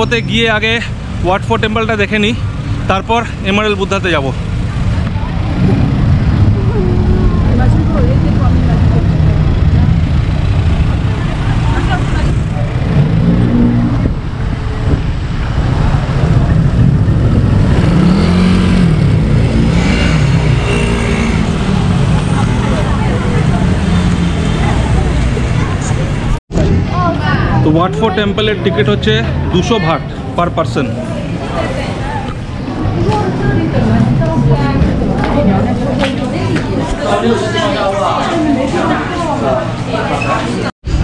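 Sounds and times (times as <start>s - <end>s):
heavy traffic rumble: 0.0s - 41.0s
passers-by voices: 0.0s - 41.0s.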